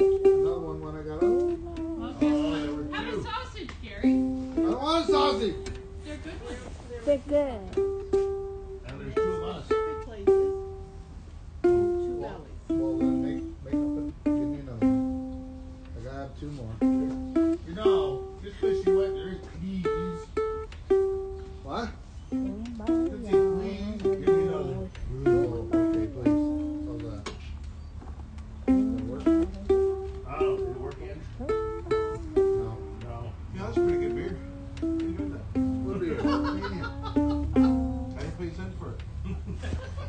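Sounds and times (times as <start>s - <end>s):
ukulele melody: 0.0s - 27.6s, 28.3s - 39.7s
voices talking in background: 0.0s - 40.0s.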